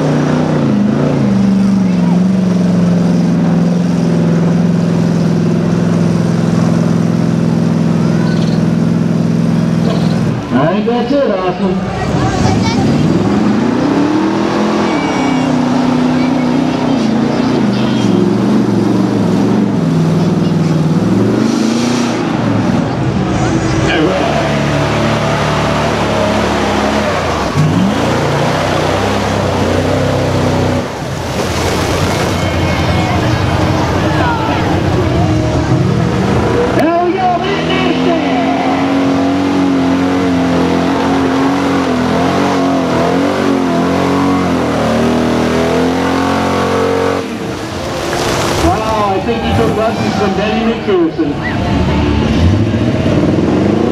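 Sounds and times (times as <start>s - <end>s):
truck engines revving: 0.0s - 53.9s.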